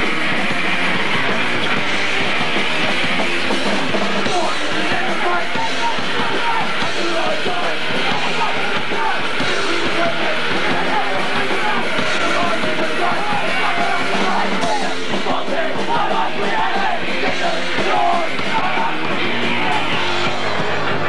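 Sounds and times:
punk rock band playing live: 0.0 - 21.0
singer yelling: 4.1 - 21.0.

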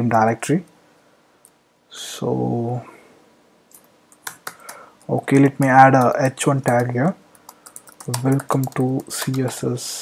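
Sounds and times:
keyboard keystrokes: 3.7 - 9.6.

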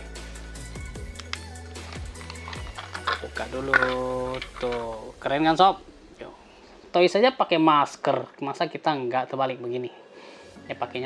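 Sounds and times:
background music low notes: 0.0 - 11.0
plastic packet crinkling: 1.2 - 5.0.

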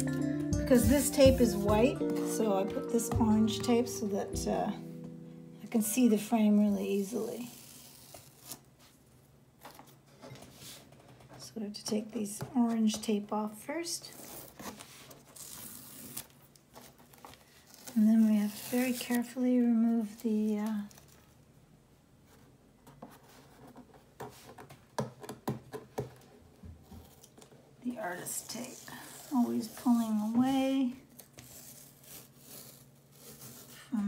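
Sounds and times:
tape peeling off paper: 7.3 - 8.9, 14.1 - 19.4, 31.1 - 33.9.

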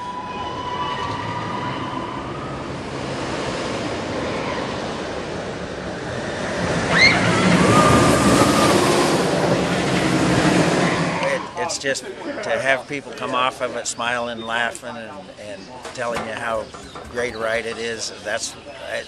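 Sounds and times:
roller coaster rushing on track: 0.0 - 11.8, 15.9 - 19.0.

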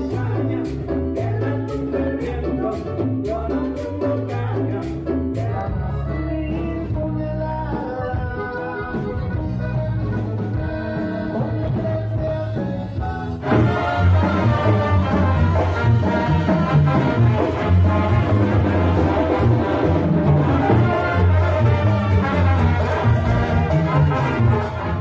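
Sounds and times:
latin band music with singer: 0.0 - 25.0.

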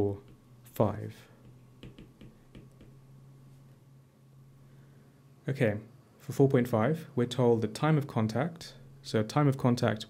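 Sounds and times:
stylus tapping on tablet screen: 0.2 - 0.5, 1.4 - 3.1.

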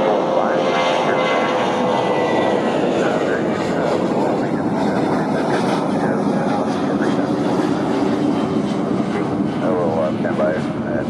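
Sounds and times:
jet engines running: 0.0 - 11.0.

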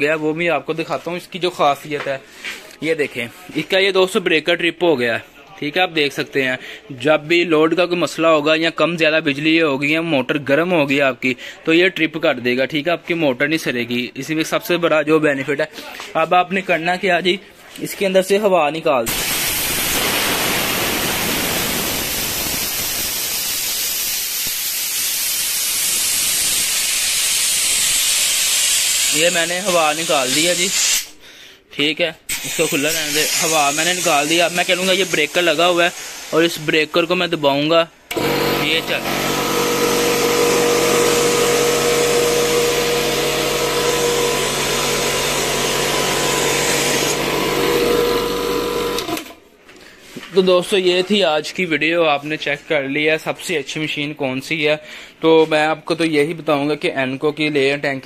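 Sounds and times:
compressed air hissing: 19.1 - 31.2, 32.3 - 37.2.

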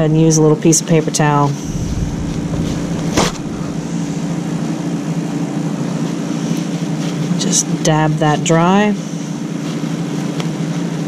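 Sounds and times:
steady low hum: 1.6 - 6.1.

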